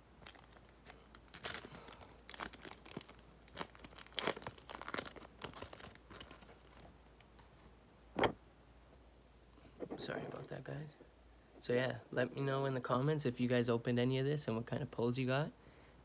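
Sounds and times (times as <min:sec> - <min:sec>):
foil wrapper crinkling and tearing: 0:00.2 - 0:06.9.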